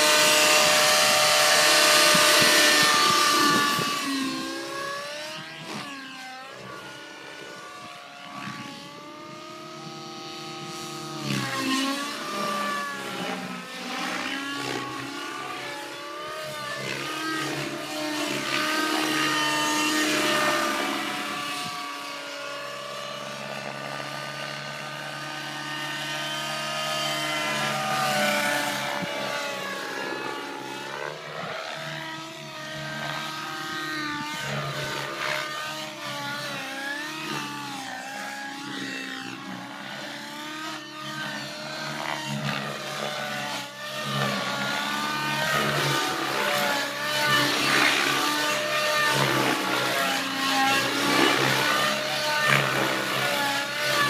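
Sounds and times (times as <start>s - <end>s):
model helicopter engine whining: 0.0s - 54.0s.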